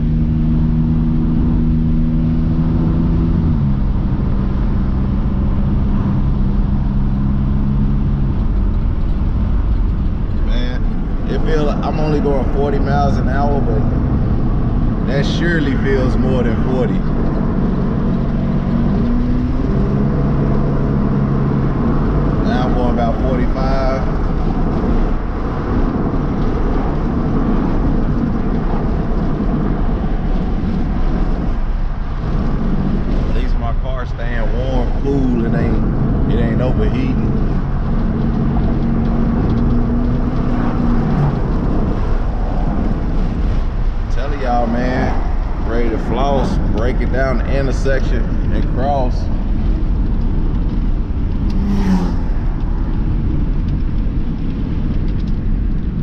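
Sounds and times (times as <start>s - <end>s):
car engine drone: 0.0s - 56.0s
road and wind noise: 0.0s - 56.0s.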